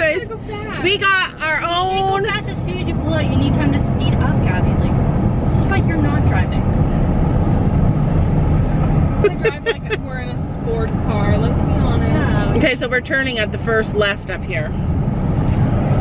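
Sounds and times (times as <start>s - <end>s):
car road and engine noise: 0.0s - 16.0s.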